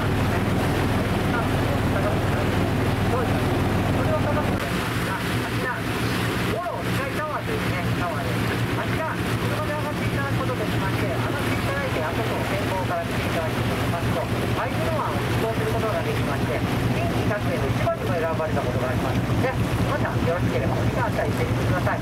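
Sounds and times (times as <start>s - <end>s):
boat engine droning: 0.0s - 22.0s.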